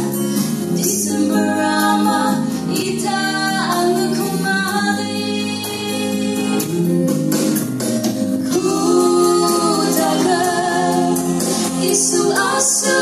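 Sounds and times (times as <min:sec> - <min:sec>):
women singing gospel duet: 0:00.7 - 0:06.9, 0:08.4 - 0:13.0.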